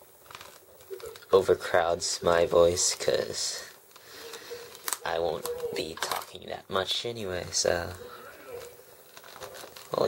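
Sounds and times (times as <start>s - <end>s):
toy packaging crinkling: 0.2s - 6.6s, 7.6s - 10.0s
quiet film dialogue: 2.9s - 10.0s.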